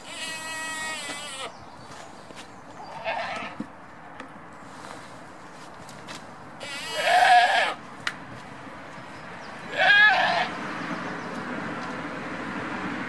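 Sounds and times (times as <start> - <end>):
goats bleating: 0.0 - 1.5, 6.6 - 7.8, 9.7 - 10.5.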